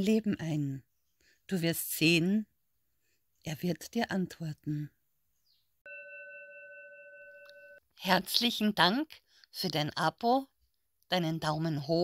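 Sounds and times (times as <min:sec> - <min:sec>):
doorbell tone: 0:05.9 - 0:07.8.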